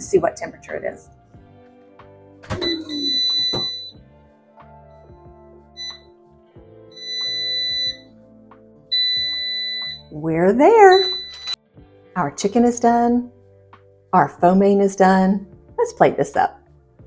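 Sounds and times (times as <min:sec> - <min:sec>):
soft background music: 0:00.0 - 0:17.0
high electronic beeps: 0:02.6 - 0:04.0, 0:07.0 - 0:08.0, 0:09.0 - 0:10.1, 0:10.8 - 0:11.6.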